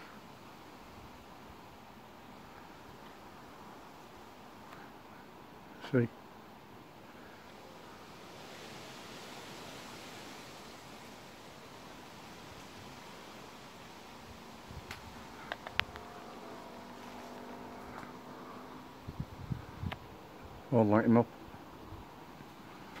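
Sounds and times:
wind hissing: 0:00.0 - 0:23.0.

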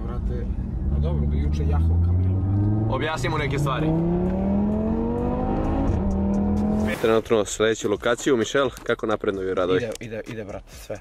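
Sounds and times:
car engine accelerating: 0:00.0 - 0:07.0.

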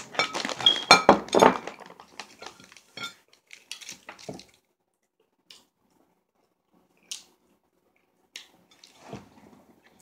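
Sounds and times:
small hard objects clinking: 0:00.0 - 0:04.4.

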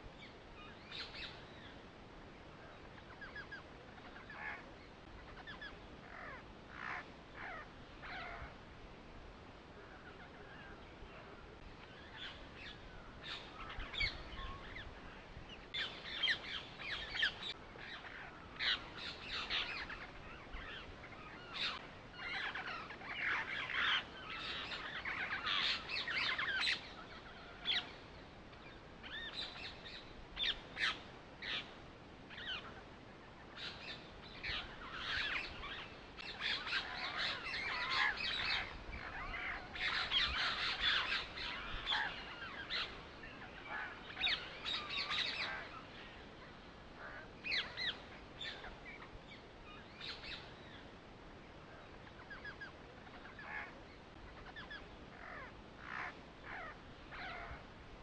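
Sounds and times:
birds chirping: 0:00.0 - 0:08.6, 0:09.4 - 0:58.0.

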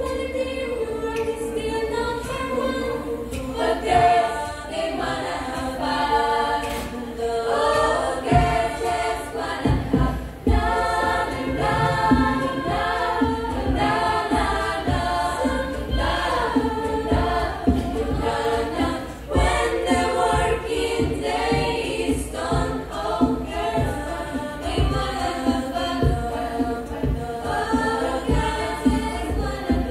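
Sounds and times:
choir of women singing: 0:00.0 - 0:29.9
low thumps: 0:06.5 - 0:29.9.

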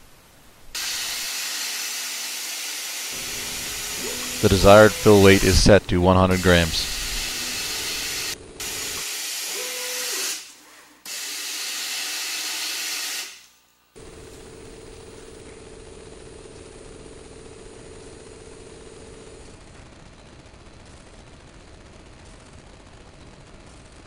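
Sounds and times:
sand flowing into container hiss: 0:00.8 - 0:10.5
feeder machine faint hum: 0:03.2 - 0:09.0.

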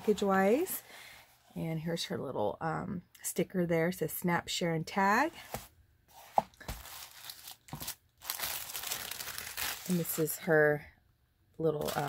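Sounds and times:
tissue paper rustling: 0:05.4 - 0:10.4, 0:11.8 - 0:12.0.

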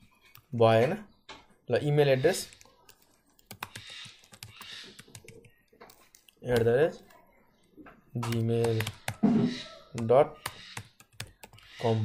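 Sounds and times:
keyboard typing clicks: 0:02.5 - 0:07.2, 0:08.2 - 0:09.2, 0:10.0 - 0:11.6.

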